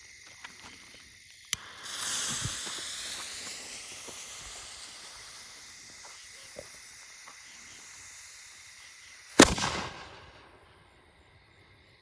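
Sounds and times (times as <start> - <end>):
firework fuse hissing: 0.0 - 12.0
firework bang with echo: 9.4 - 10.5.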